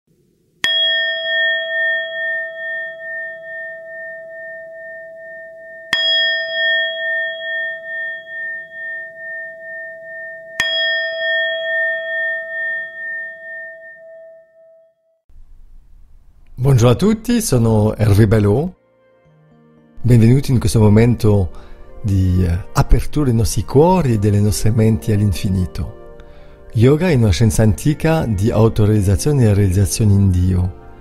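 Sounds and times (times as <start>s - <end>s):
singing bowl ringing: 0.6s - 15.3s.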